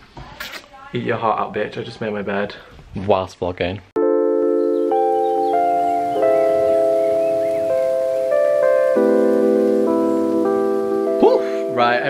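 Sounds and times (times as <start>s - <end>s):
background music held chords: 4.0s - 12.0s.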